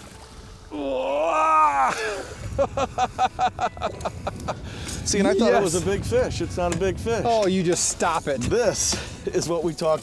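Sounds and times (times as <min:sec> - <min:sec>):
man whooping: 0:00.7 - 0:02.3
laughter: 0:02.4 - 0:04.6.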